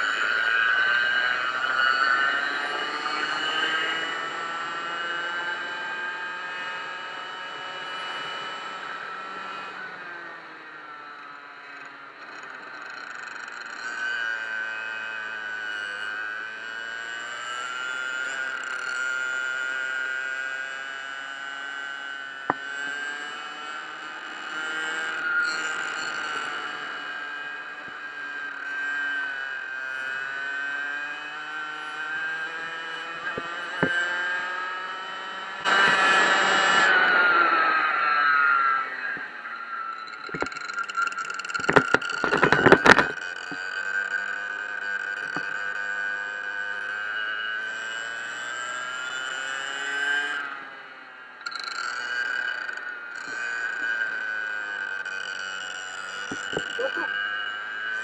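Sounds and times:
go-kart engine: 0.0s - 58.0s.

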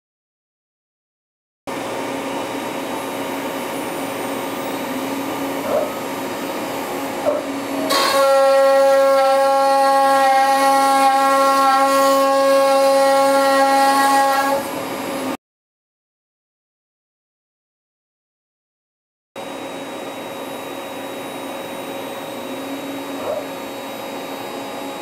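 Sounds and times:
router bit cutting wood howl: 1.7s - 15.4s, 19.4s - 25.0s.

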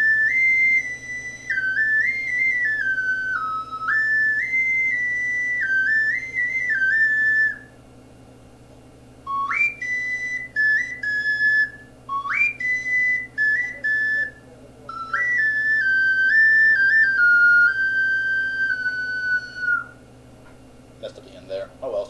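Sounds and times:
ocarina melody: 0.0s - 7.8s, 9.2s - 20.0s.

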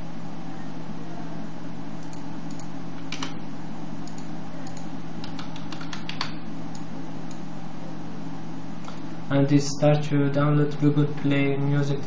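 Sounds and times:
steady low hum: 0.0s - 12.0s
computer keyboard keystrokes: 2.0s - 3.4s, 4.1s - 6.9s.

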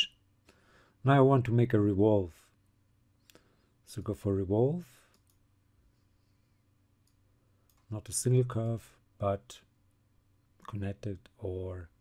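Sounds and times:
computer mouse clicks: 5.1s - 5.4s, 7.0s - 7.9s.

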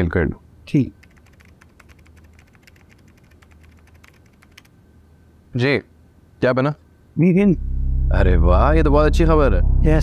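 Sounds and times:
laptop keyboard typing: 1.0s - 4.7s.

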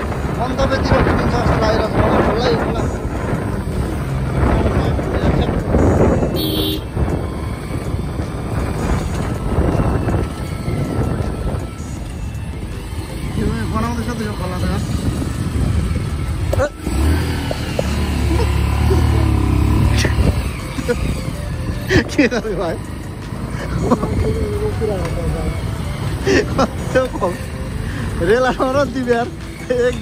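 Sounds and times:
motorcycles and cars passing: 0.0s - 30.0s
steady engine hum: 0.0s - 30.0s.

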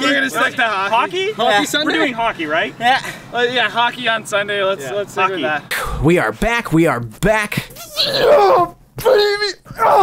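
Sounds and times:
man shrieking with laughter: 7.8s - 10.0s.

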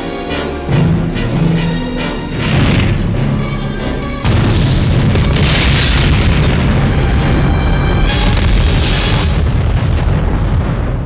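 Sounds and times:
film trailer music: 0.0s - 11.0s
explosion booms: 2.4s - 3.2s, 4.2s - 11.0s.

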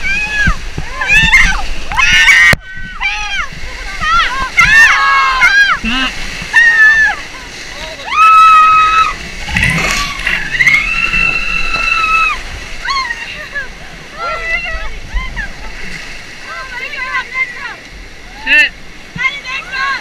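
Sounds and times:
people yelling and whooping: 0.0s - 15.8s
whitewater rushing and splashing: 0.0s - 20.0s
long high scream: 8.1s - 9.2s, 10.0s - 13.0s.

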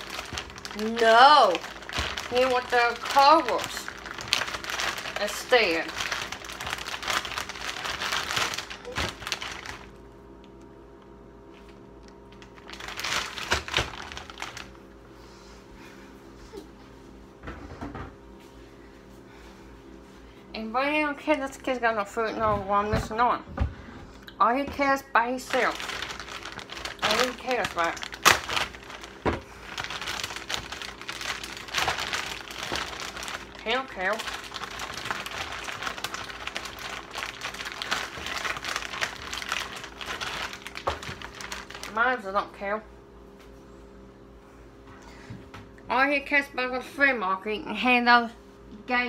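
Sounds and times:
plastic bag crinkling: 0.0s - 10.1s, 11.5s - 14.9s, 25.2s - 42.3s.

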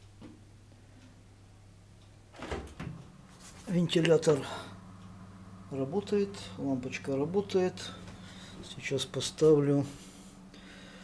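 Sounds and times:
steady low hum: 0.0s - 11.0s
oven door opening: 2.3s - 3.1s
oven door clunks: 2.4s - 3.0s.

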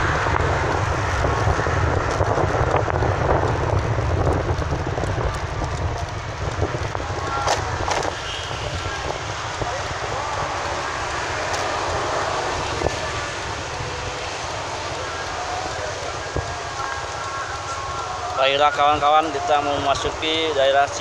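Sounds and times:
road and wind noise: 0.0s - 21.0s
vehicle engine rumble: 0.0s - 21.0s.

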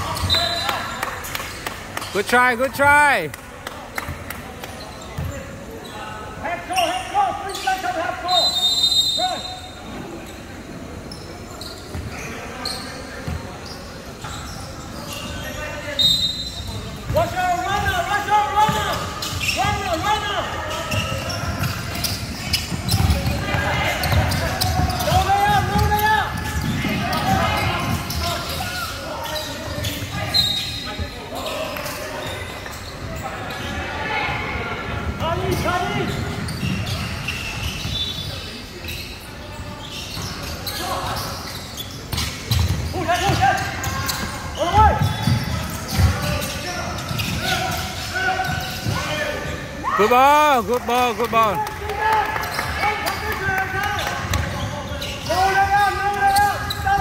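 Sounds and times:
players moving on court: 11.1s - 57.0s.

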